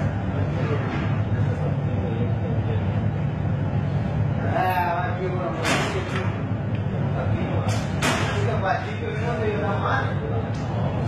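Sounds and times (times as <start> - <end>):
workshop hum: 0.0 - 11.0.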